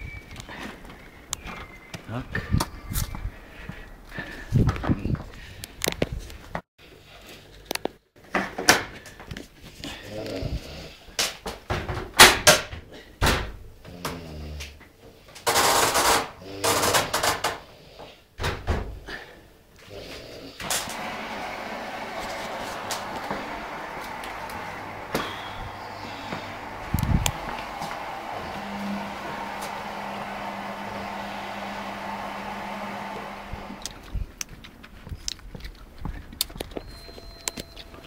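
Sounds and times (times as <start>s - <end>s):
steady mechanical hum: 20.6s - 35.4s.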